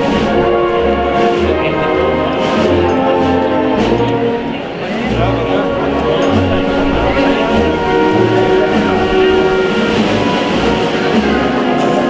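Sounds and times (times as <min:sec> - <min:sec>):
concert band playing a march: 0:00.0 - 0:12.0.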